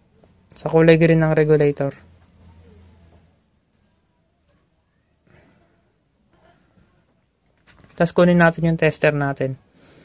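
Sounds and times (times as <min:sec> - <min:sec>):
handling of wire terminals and clip: 0:01.9 - 0:05.7, 0:06.3 - 0:08.2.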